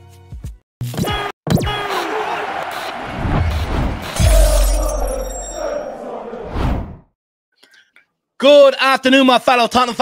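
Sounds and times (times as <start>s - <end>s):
deep bass hit: 3.1s - 5.3s
glass shattering: 4.2s - 5.6s.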